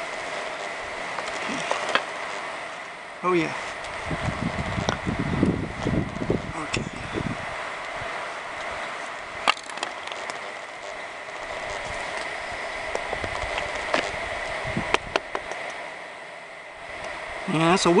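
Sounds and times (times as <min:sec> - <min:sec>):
wind hiss on microphone: 0:00.0 - 0:18.0.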